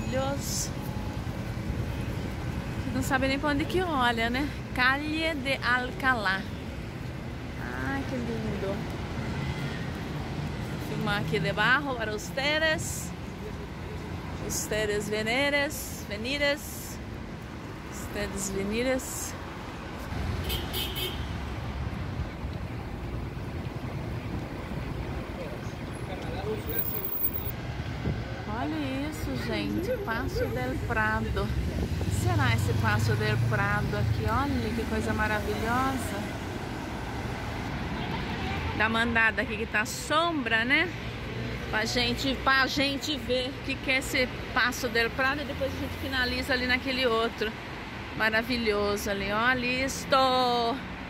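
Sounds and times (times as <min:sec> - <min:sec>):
faint voices of passers-by: 0:00.0 - 0:20.1, 0:21.8 - 0:51.0
city traffic rumble: 0:00.0 - 0:51.0.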